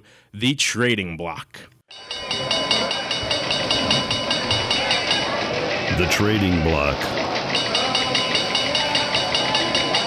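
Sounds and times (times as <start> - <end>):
steady high tones: 1.9 - 10.0.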